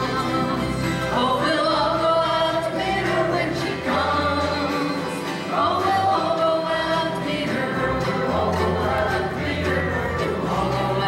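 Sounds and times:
acoustic string band: 0:00.0 - 0:11.0
group of voices singing: 0:00.0 - 0:11.0.

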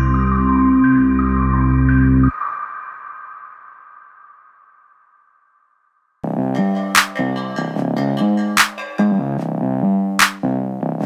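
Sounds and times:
background music: 0:00.0 - 0:02.3, 0:06.2 - 0:11.0.

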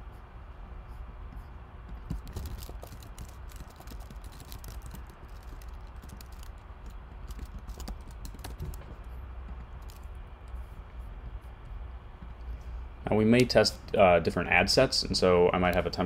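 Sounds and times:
typing on computer keyboard: 0:02.1 - 0:09.0.

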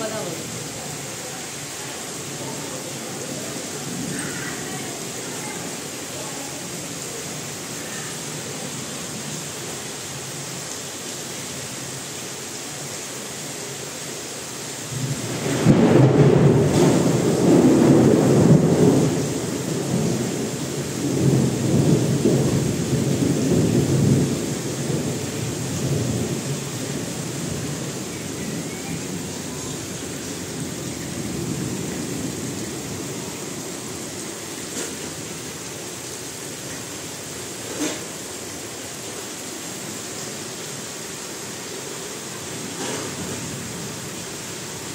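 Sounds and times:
heavy rain falling: 0:00.0 - 0:44.9
thunder rolling: 0:14.9 - 0:34.0.

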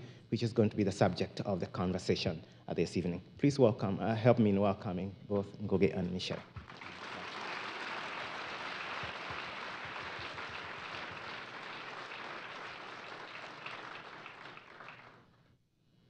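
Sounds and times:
audience applauding: 0:06.5 - 0:15.2.

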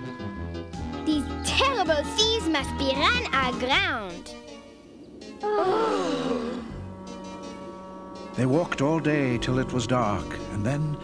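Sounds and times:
soft sustained music: 0:04.0 - 0:11.0
cartoon characters groaning: 0:05.4 - 0:06.8.

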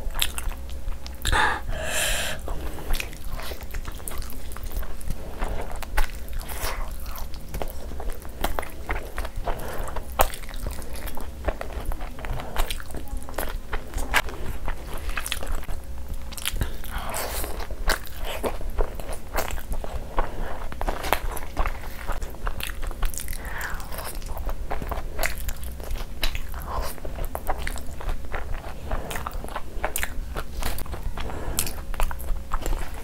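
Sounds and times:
close chewing and biting: 0:00.0 - 0:33.0.

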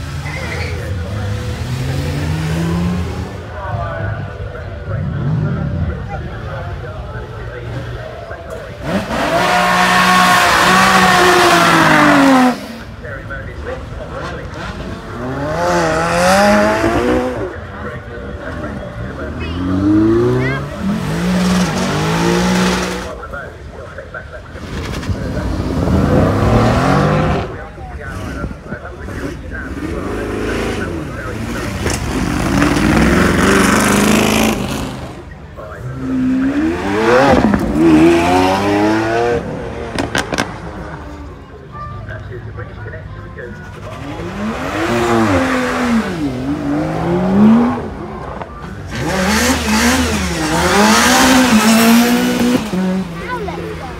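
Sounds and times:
sports car engines revving: 0:00.0 - 0:53.9.

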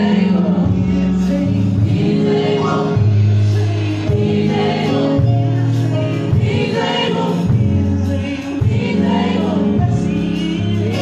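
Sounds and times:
choir singing: 0:00.0 - 0:11.0
keyboard chords: 0:00.0 - 0:11.0
sustained bass notes: 0:00.0 - 0:11.0
woman singing lead: 0:00.0 - 0:11.0.

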